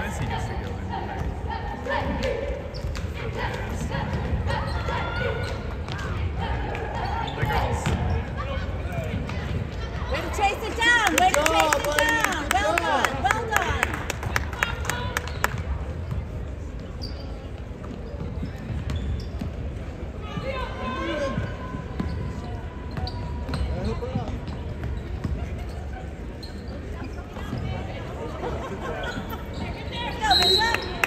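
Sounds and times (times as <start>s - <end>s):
crowd talking: 0.0s - 31.0s
basketball bouncing: 7.4s - 8.2s
sneakers squeaking on hardwood: 16.1s - 19.8s, 21.4s - 27.9s.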